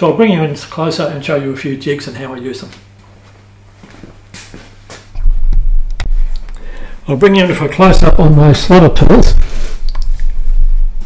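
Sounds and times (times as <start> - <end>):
faint steady hum: 0.0 - 11.0
microphone handling rumble: 5.1 - 7.0, 7.8 - 11.0.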